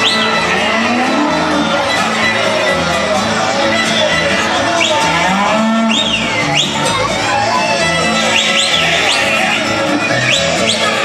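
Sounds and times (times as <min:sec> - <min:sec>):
cows and calves mooing: 0:00.0 - 0:01.9, 0:04.9 - 0:06.2.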